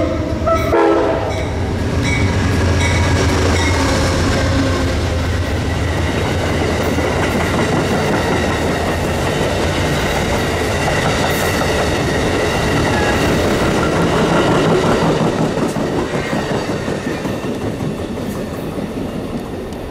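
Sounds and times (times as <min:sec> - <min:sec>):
high ringing from train wheels: 0:00.0 - 0:19.9
train wheels rumbling on rails: 0:00.0 - 0:19.9.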